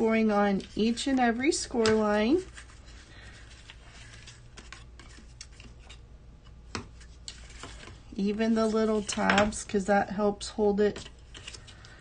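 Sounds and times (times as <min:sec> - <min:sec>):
paper rustling and scraping: 0:00.3 - 0:06.0, 0:06.9 - 0:09.6.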